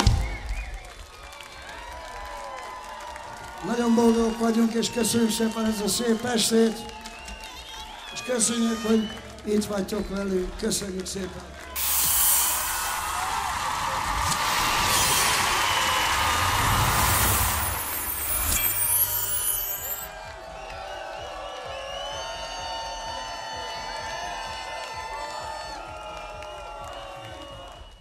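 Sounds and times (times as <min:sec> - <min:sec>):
concert crowd cheering and applauding: 0:00.0 - 0:28.0.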